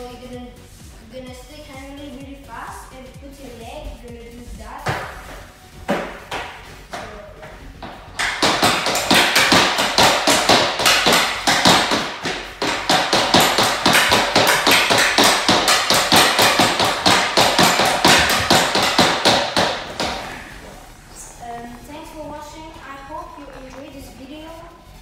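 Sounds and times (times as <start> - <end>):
hockey stick tapping puck on floor: 4.8 - 5.1, 5.9 - 7.2, 7.8 - 20.6.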